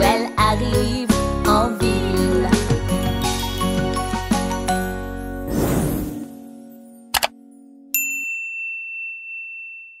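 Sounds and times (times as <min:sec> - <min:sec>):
bright bell ding: 0:07.9 - 0:10.0.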